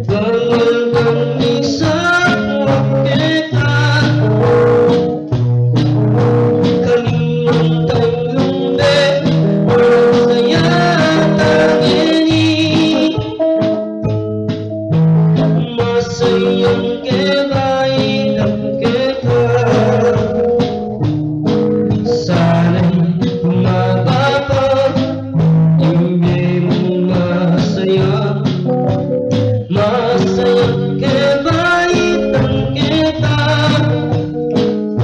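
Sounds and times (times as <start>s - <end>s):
man singing into a microphone: 0.0s - 5.3s, 6.3s - 13.8s, 15.4s - 20.8s, 21.7s - 28.9s, 29.6s - 35.0s
electric guitar: 0.0s - 35.0s.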